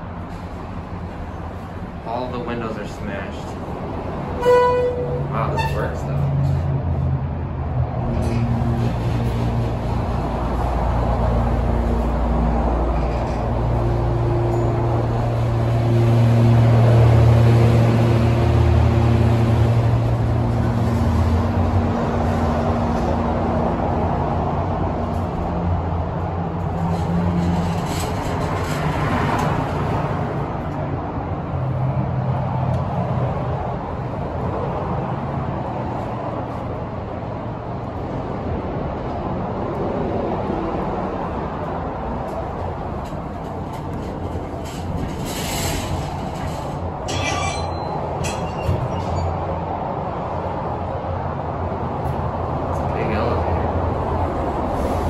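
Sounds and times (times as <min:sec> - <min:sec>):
freeway traffic noise: 0:00.0 - 0:55.0
elevator doors opening: 0:04.2 - 0:06.7, 0:42.6 - 0:49.7.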